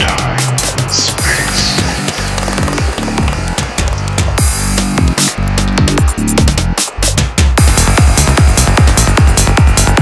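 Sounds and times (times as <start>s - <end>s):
dense synth layer: 0.0s - 10.0s
driving kick drum: 0.0s - 10.0s.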